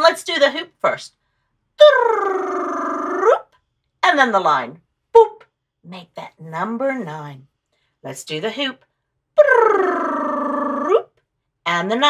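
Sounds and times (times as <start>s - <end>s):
woman's sliding ooo voice: 9.4s - 11.1s.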